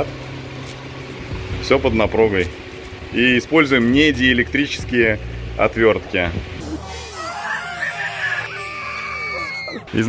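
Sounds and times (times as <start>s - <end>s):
long high crowing cry: 6.7s - 9.9s.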